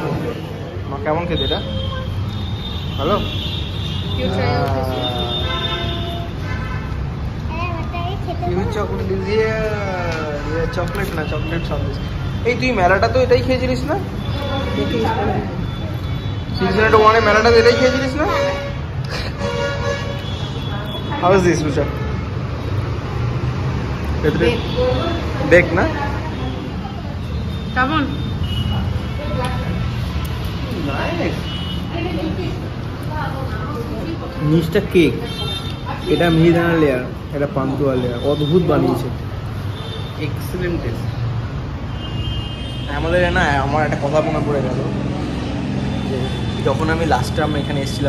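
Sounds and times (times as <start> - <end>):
street traffic rumbling: 0.0 - 48.0
car horn: 1.3 - 7.0, 14.2 - 22.5, 41.9 - 43.4.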